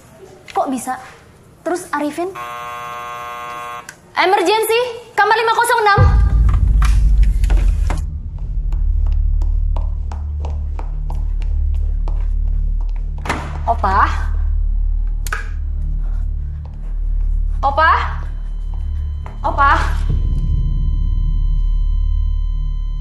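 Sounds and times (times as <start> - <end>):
deep droning pulse: 6.0 - 23.0.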